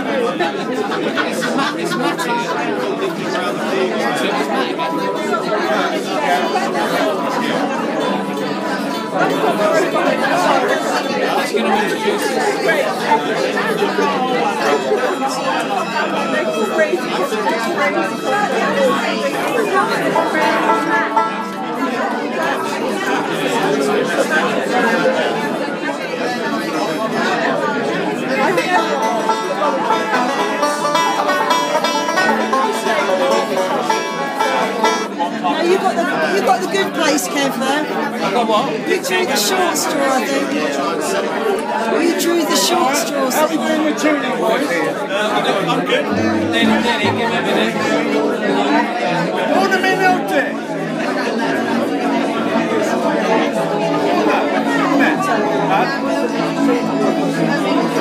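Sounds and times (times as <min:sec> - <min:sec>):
acoustic string band: 0:00.0 - 0:58.0
crowd chatter: 0:00.0 - 0:58.0
banjo picking: 0:00.9 - 0:25.2, 0:28.1 - 0:40.5, 0:45.4 - 0:58.0.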